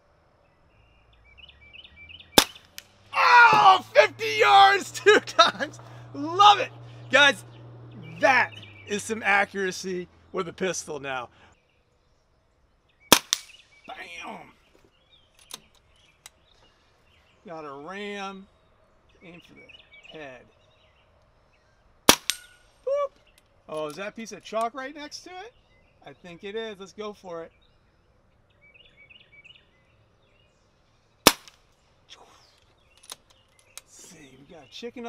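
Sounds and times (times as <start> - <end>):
birds chirping: 0.0 - 35.0
quiet outdoor background: 0.0 - 35.0
air pistol shot: 2.4 - 2.9, 13.1 - 13.6, 22.1 - 22.5, 31.3 - 31.6
faint sharp clicks: 32.6 - 33.9.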